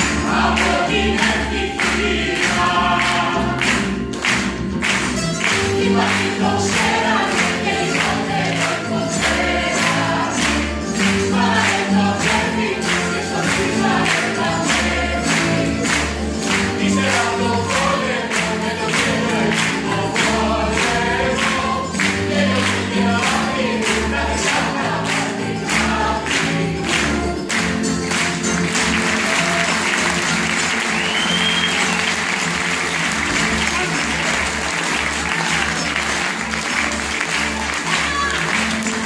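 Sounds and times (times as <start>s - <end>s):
cast singing chorus: 0.0s - 3.9s, 5.6s - 27.2s.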